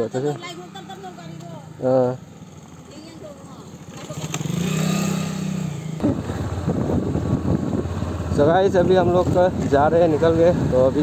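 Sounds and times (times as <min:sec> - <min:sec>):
motorcycle passing: 0:00.0 - 0:11.0
rough motorcycle engine rumble: 0:00.0 - 0:11.0.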